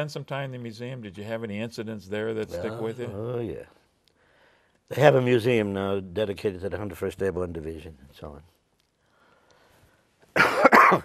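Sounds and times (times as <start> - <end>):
man coughing: 10.3 - 11.0.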